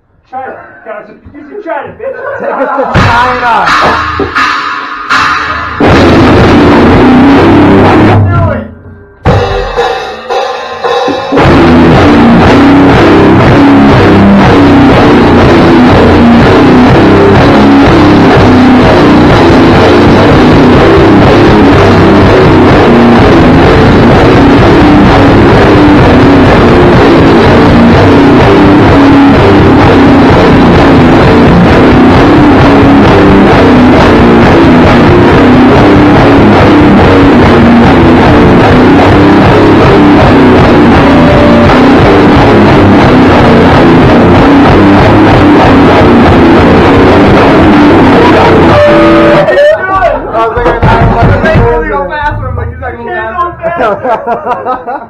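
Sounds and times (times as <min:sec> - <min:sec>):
loud rock band playing: 0:02.6 - 0:08.6, 0:09.2 - 0:51.9.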